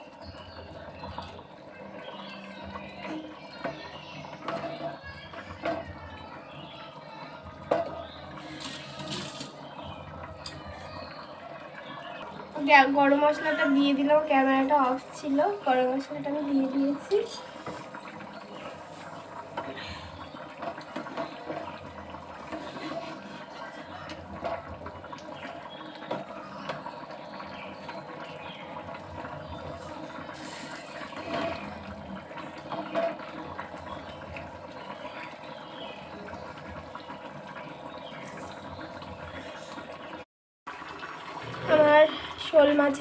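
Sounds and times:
curry simmering and bubbling: 0.0 - 43.0.

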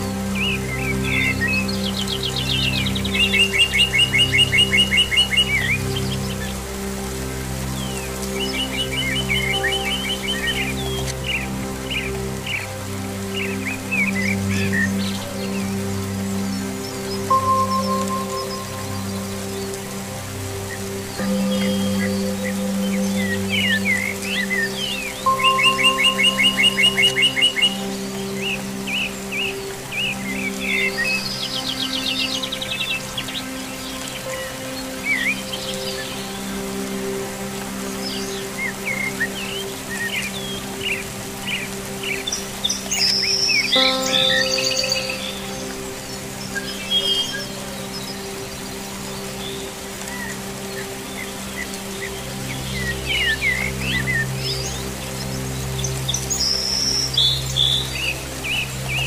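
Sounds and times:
faint rain hiss: 0.0 - 59.0
songbirds chirping and trilling: 0.0 - 59.0.

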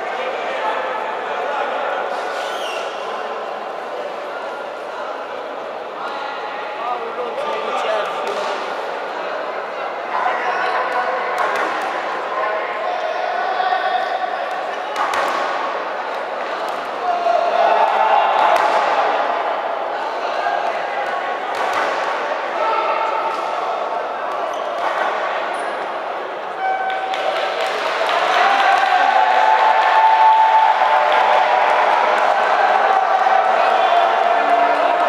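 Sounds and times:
voices calling out in a hall: 0.0 - 35.0.

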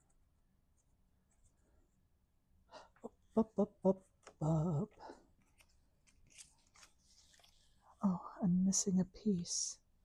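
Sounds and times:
cardstock rustling and ticking: 5.4 - 7.7.

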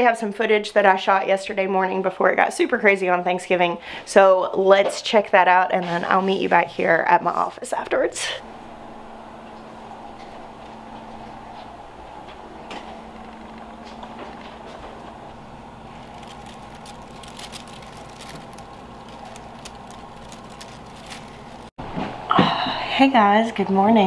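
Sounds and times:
steady background hum: 0.0 - 24.0.

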